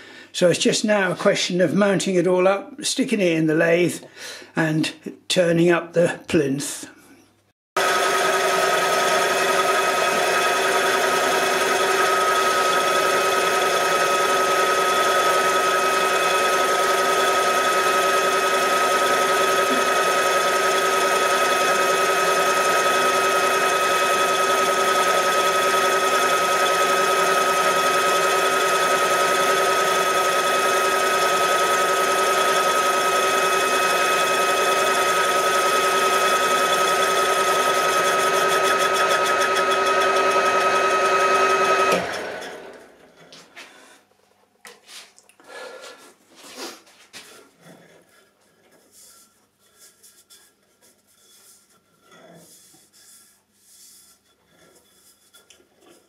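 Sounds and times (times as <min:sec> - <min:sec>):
lathe motor whine: 0:07.8 - 0:43.2.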